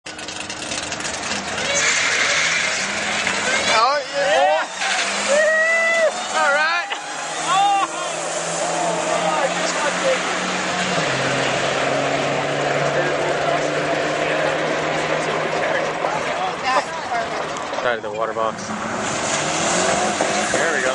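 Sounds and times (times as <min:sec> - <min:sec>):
drag car engines: 0:00.0 - 0:20.9
people's voices: 0:01.3 - 0:20.9.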